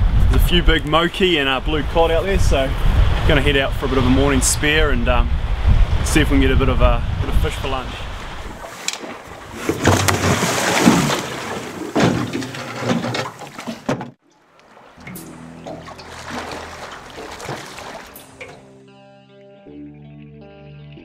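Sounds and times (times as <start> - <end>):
water splashing and sloshing: 8.1 - 18.8.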